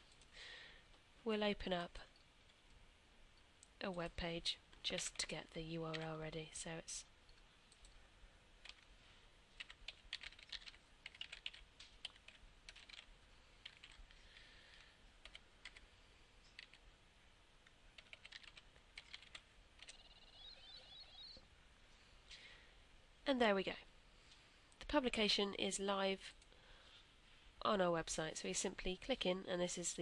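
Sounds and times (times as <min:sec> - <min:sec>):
keyboard keys clicking: 0:09.6 - 0:14.1, 0:18.0 - 0:20.0.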